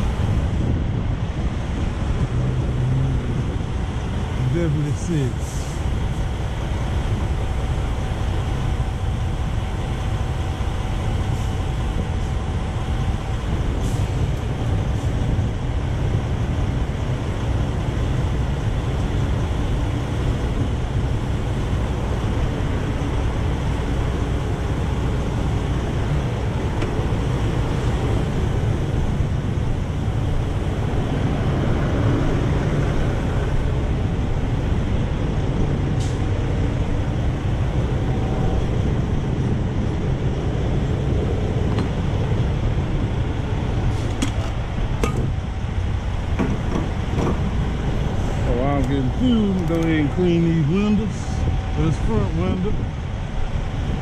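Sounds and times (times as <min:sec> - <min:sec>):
diesel truck engines idling: 0:00.0 - 0:54.0.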